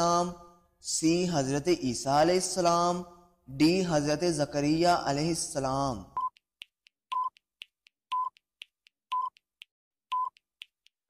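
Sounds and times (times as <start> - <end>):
faint timer tick: 6.2 - 10.7
short electronic beeps: 7.1 - 7.4, 8.1 - 8.4, 9.1 - 9.4, 10.1 - 10.4.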